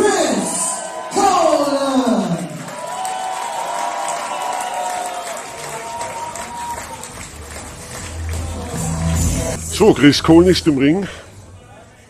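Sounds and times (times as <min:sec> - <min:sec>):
crowd applauding and cheering: 0:00.4 - 0:09.6
entrance music with deep bass: 0:06.5 - 0:11.8.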